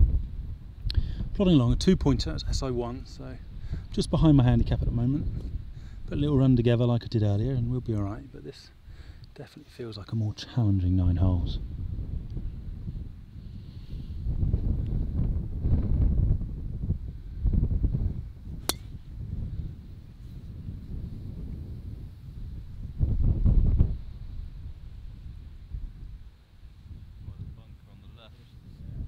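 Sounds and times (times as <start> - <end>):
wind buffeting microphone: 0.0 - 9.3, 10.7 - 29.0
golf club striking ball: 18.6 - 19.1.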